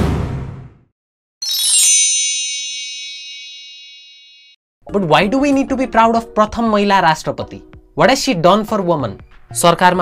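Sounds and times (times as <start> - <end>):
bell-like notification ding: 1.4 - 4.6.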